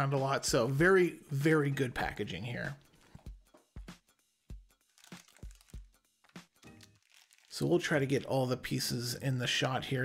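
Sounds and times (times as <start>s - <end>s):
plastic wrap crinkling: 4.8s - 8.6s.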